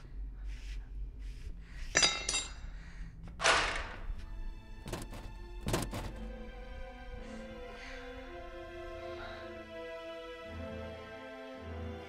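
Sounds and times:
film score music: 0:03.0 - 0:12.0
heavy metallic thunks: 0:04.8 - 0:06.4
sharp knocks: 0:04.8 - 0:06.4.

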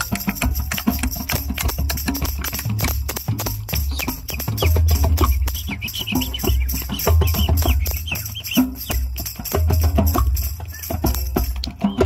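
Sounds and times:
deep low drum beats: 0:00.0 - 0:12.0
hand drums playing fast rhythm: 0:00.0 - 0:12.0.

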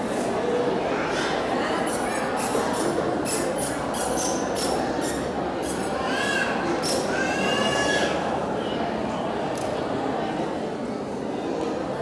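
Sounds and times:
crowd murmur in large hall: 0:00.0 - 0:12.0
child squealing: 0:05.7 - 0:08.2.

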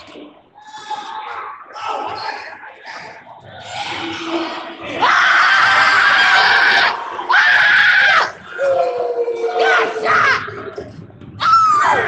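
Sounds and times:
voices cheering: 0:03.6 - 0:12.0.

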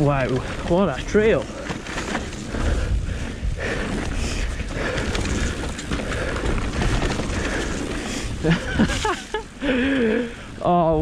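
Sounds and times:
mountain bike rattling on dirt trail: 0:00.0 - 0:11.0.

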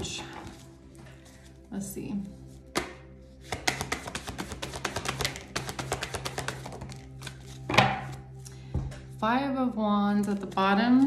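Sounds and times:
soft background music: 0:00.0 - 0:11.0
cards being shuffled: 0:02.3 - 0:08.5.

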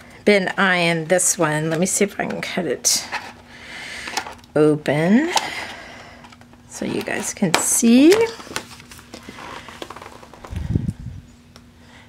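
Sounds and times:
plastic wrapper rustling: 0:08.0 - 0:10.6.

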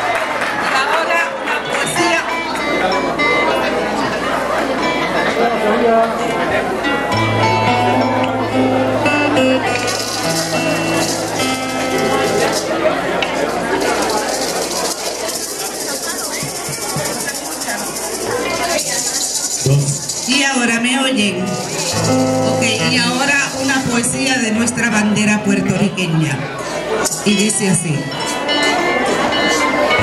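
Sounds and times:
acoustic guitars playing: 0:01.9 - 0:30.0
hand percussion rattle: 0:09.6 - 0:24.3, 0:27.0 - 0:27.4.

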